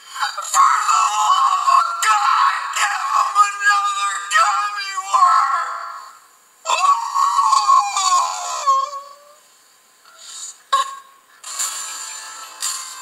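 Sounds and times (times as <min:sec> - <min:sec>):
voice calling out: 0:00.3 - 0:09.4
music from tv speaker: 0:10.1 - 0:13.0.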